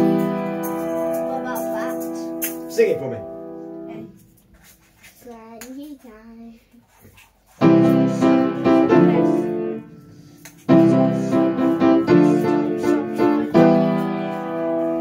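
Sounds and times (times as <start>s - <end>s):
piano chords: 0.0s - 4.4s, 7.6s - 15.0s.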